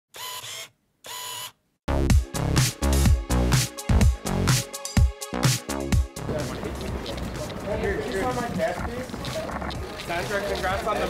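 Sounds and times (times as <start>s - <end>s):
camera shutter and winder: 0.2s - 1.6s
loud dance music: 1.9s - 6.2s.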